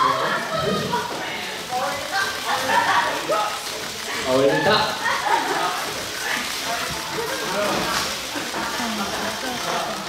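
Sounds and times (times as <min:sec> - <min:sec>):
voices talking in a hall: 0:00.0 - 0:10.0.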